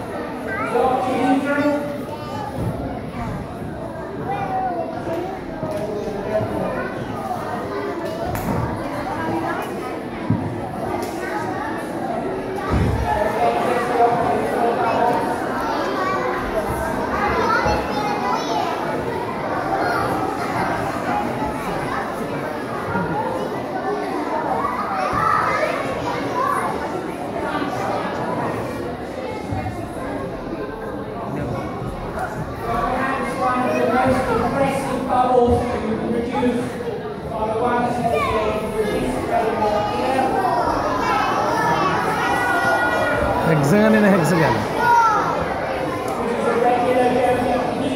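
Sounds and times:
children talking and calling out: 0:00.0 - 0:47.9.

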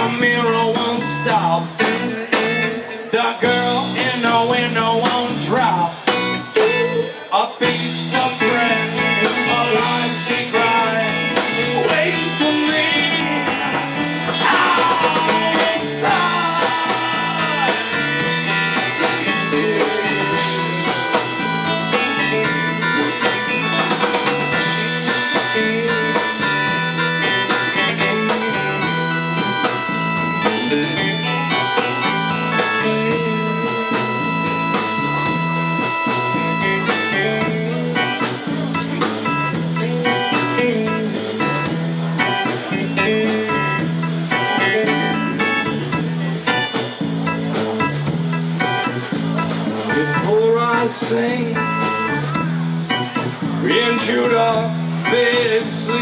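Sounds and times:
electric organ tones: 0:00.0 - 0:56.0
rock band playing instrumental: 0:00.0 - 0:56.0.

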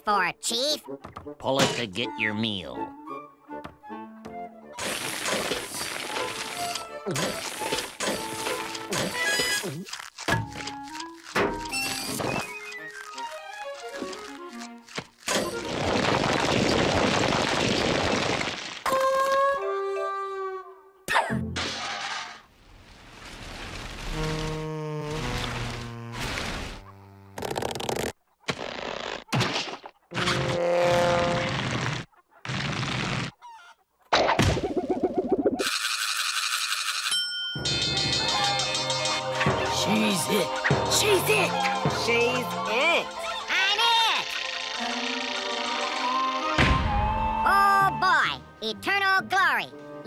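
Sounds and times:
cartoon music: 0:37.6 - 0:49.6.

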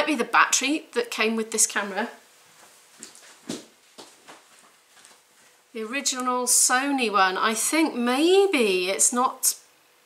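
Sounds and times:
soft handling knocks and rustles: 0:02.5 - 0:05.6.

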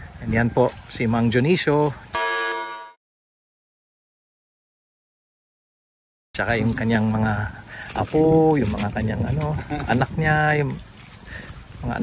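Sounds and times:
horn-like buzzer: 0:02.2 - 0:03.0.

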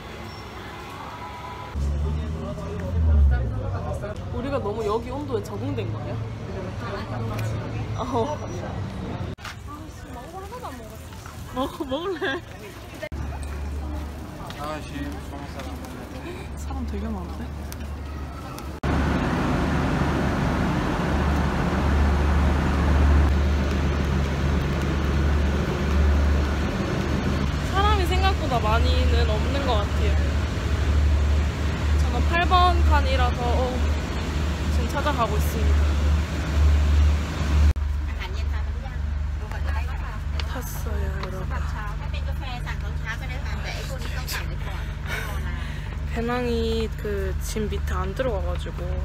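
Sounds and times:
diesel trains idling: 0:18.6 - 0:49.0.

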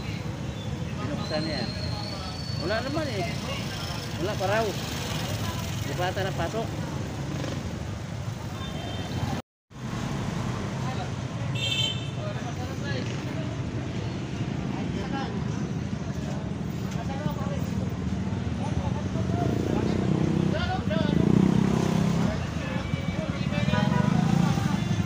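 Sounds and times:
traffic rumble: 0:00.0 - 0:25.0.

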